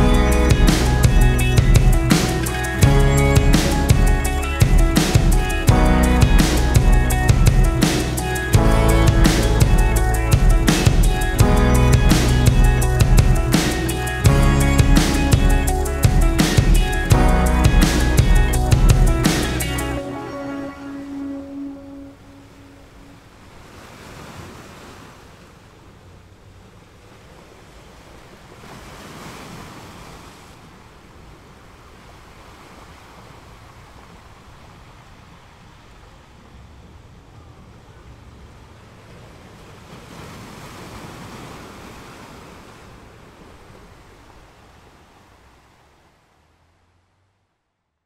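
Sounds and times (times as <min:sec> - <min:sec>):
music: 0:00.0 - 0:22.8
sea surf washing on shore: 0:00.0 - 0:47.0.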